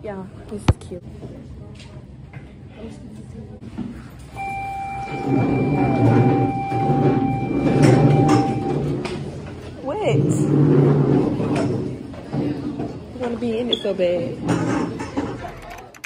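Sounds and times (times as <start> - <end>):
chatter of many voices: 0.0 - 4.4, 5.1 - 16.0
steady electronic tone: 4.4 - 8.9.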